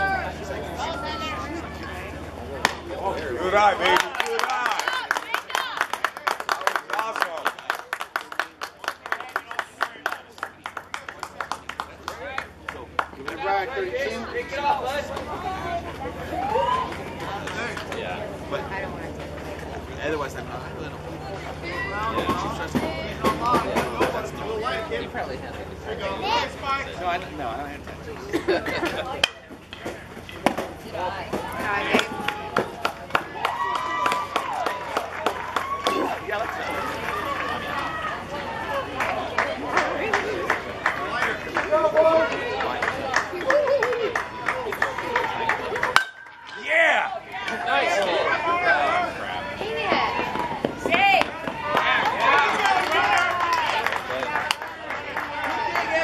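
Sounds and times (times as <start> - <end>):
voices chattering: 0.0 - 56.0
spectators applauding: 3.5 - 13.8, 16.3 - 18.2, 31.8 - 46.5, 51.0 - 56.0
hands clapping steadily: 3.8 - 13.5, 16.9 - 18.2, 31.3 - 37.6, 39.0 - 46.5, 51.0 - 56.0.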